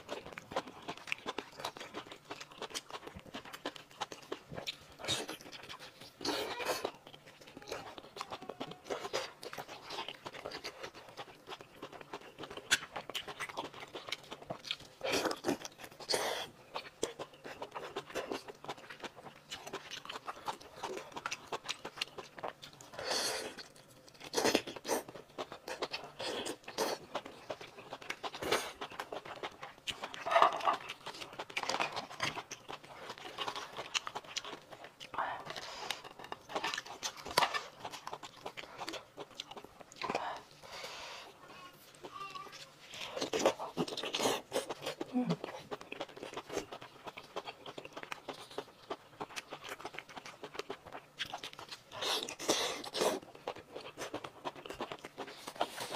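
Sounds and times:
close chewing and biting: 0.0 - 55.9.

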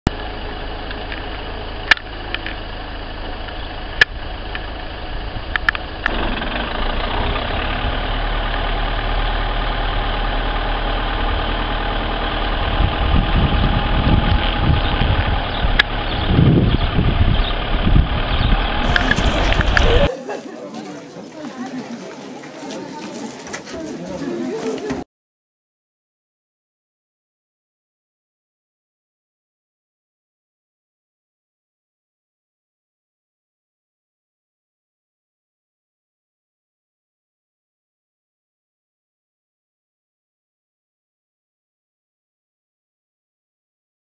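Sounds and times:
vehicle on dirt road: 0.1 - 25.1.

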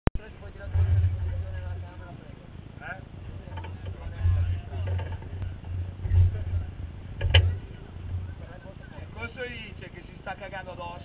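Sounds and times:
low rumble: 0.2 - 10.4
faint background voices: 0.2 - 11.0.

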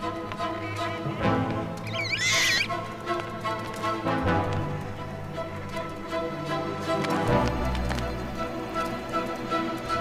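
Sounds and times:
orchestral music with held notes: 0.0 - 10.0
high-pitched wavering animal call: 1.8 - 2.7.

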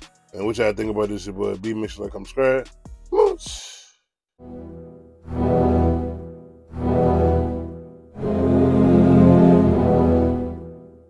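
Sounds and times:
logo animation music: 4.4 - 11.0.

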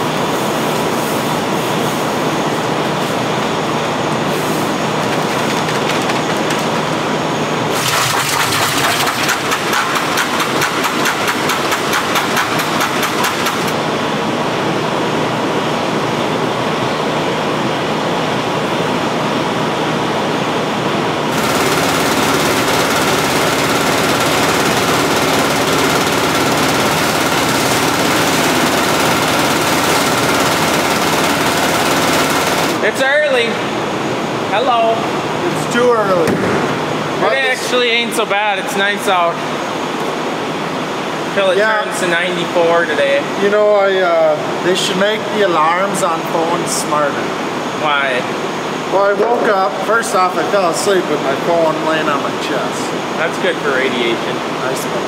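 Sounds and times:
steady machine whine: 0.0 - 43.7
mixing machine running: 4.6 - 14.1, 21.0 - 33.7
fast even clatter: 5.0 - 7.0, 7.7 - 13.8.

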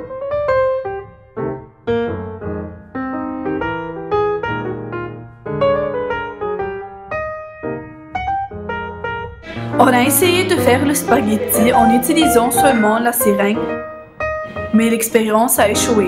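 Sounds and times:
piano music: 0.0 - 16.0.

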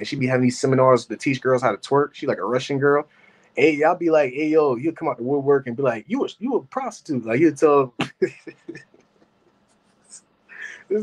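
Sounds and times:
man speaking: 0.0 - 9.0, 10.6 - 11.0.

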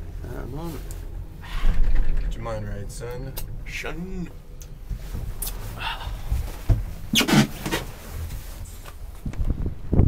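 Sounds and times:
gondola cabin rumble: 0.0 - 10.0.

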